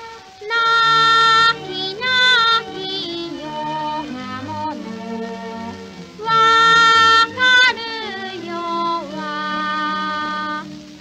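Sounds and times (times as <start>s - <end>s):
girl singing: 0.0s - 4.9s, 6.2s - 10.7s
instrumental accompaniment: 0.0s - 11.0s.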